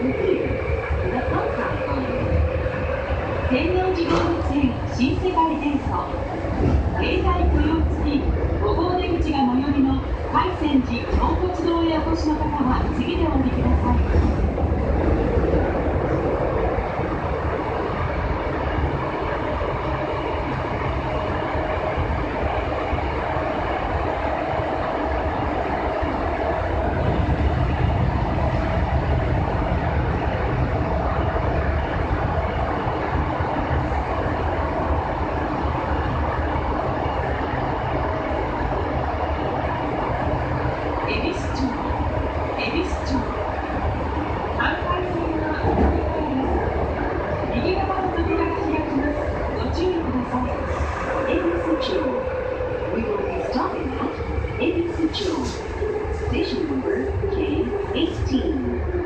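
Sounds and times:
train wheels rumbling: 0.0s - 59.0s.

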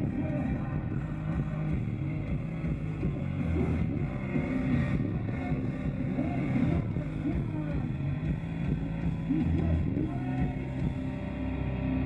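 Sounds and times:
person singing: 0.0s - 2.2s, 3.0s - 8.0s, 9.1s - 11.1s
live rock band playing: 0.0s - 12.0s.

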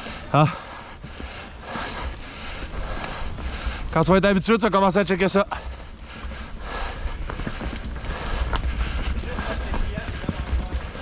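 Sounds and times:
bike tyres on dirt and roots: 0.0s - 11.0s
rattling clicks and knocks from bike: 1.0s - 11.0s.

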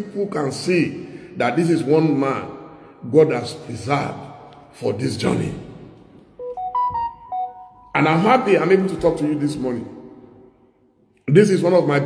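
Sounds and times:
short electronic chime melody: 6.4s - 7.9s.

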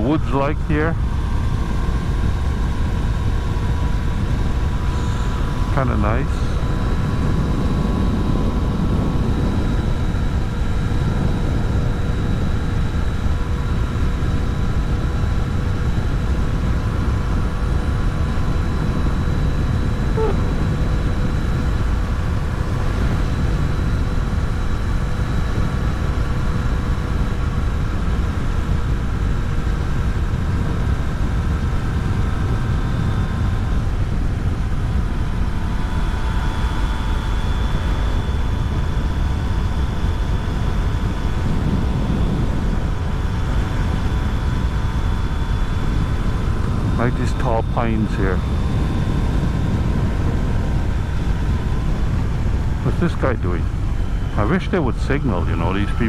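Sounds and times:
wind and road rush: 0.0s - 55.3s
motorcycle engine hum: 16.2s - 23.2s.

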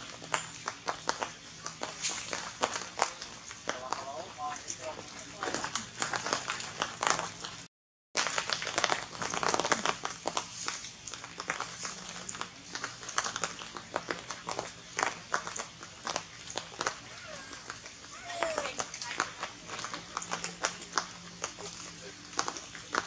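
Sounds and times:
crackling and rustling clicks: 0.0s - 23.0s.

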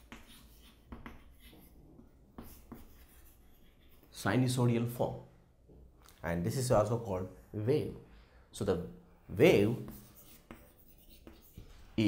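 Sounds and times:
chalk tapping: 0.0s - 4.1s, 9.5s - 11.8s
chalk scratching on chalkboard: 0.0s - 4.2s, 9.4s - 12.0s.

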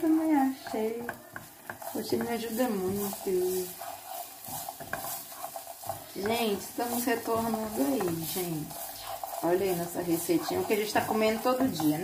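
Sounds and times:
garlic sizzling in oil: 0.0s - 12.0s
spatula scraping and tapping pan: 0.0s - 12.0s.

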